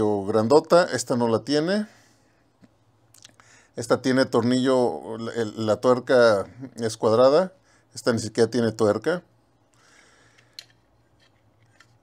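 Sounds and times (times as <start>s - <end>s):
handling of metal toy guns: 10.3s - 12.0s.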